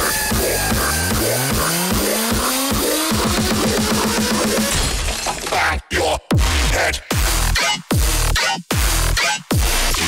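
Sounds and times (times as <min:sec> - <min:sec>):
rapid bass stabs: 0:00.0 - 0:04.7, 0:06.0 - 0:10.0
dubstep music: 0:00.0 - 0:04.8, 0:05.4 - 0:10.0.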